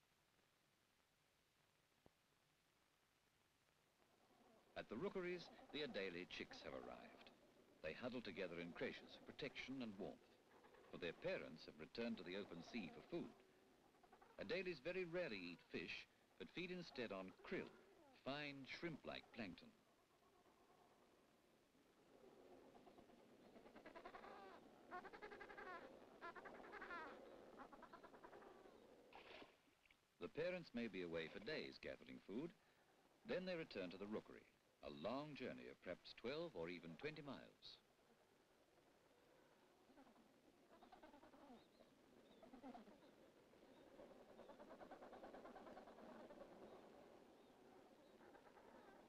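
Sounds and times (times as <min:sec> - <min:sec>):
penguins squawking: 0:23.6 - 0:28.7.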